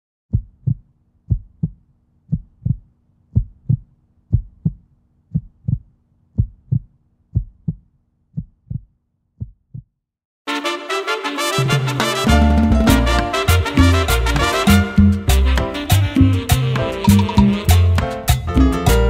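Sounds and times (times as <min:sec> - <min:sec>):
heartbeat thumps: 0:00.3 - 0:09.9.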